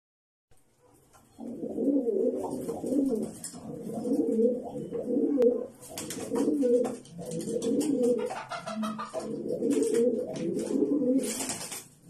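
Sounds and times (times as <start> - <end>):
pigeons cooing: 1.3 - 11.6.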